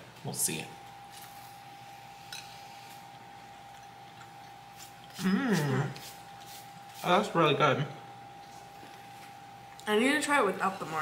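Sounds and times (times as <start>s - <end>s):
faint steady whine: 0.0s - 11.0s.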